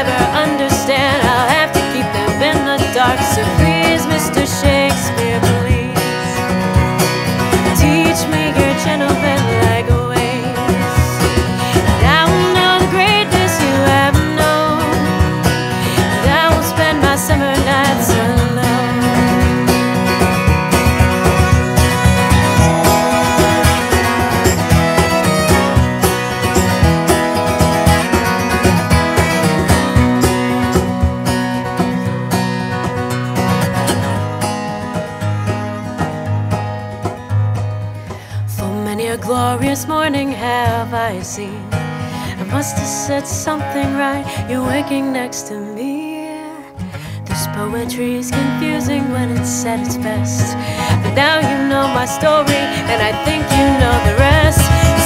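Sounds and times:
violin lead with sliding notes: 0:00.0 - 0:31.2, 0:50.5 - 0:55.0
light hand percussion: 0:00.0 - 0:38.2, 0:50.8 - 0:55.0
strummed acoustic guitar: 0:00.0 - 0:55.0.

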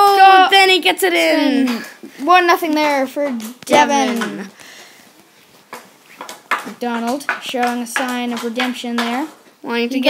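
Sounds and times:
boy commentating: 0:00.0 - 0:04.6.

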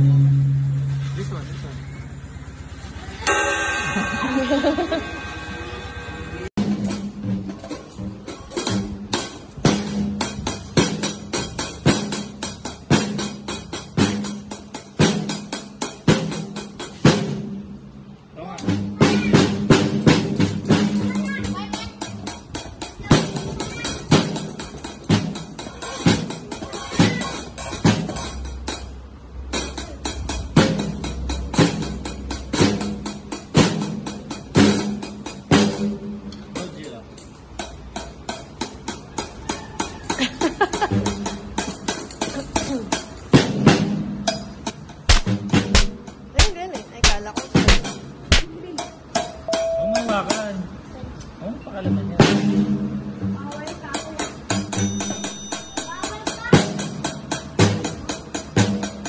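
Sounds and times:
drum kit playing: 0:02.7 - 0:51.4, 0:52.2 - 0:59.0
background music: 0:49.5 - 0:50.3.

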